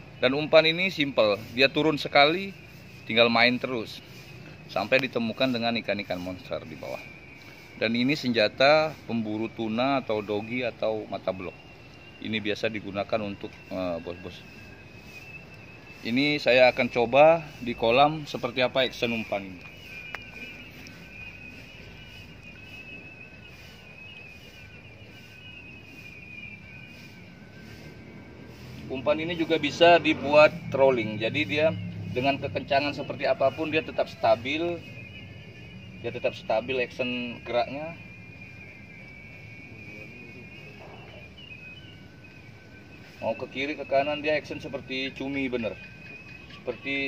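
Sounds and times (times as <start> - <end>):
lower steady tone: 0.0 - 47.0
steady high-pitched whine: 0.0 - 47.0.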